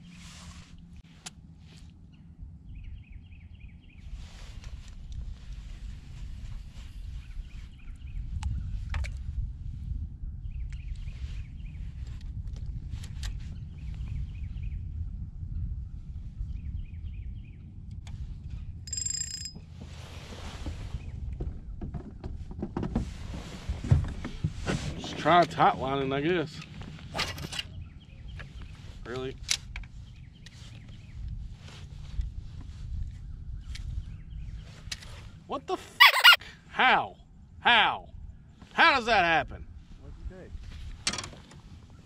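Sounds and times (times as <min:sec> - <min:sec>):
wind rumbling on microphone: 0:00.0 - 0:18.9, 0:19.7 - 0:35.5, 0:39.5 - 0:42.0.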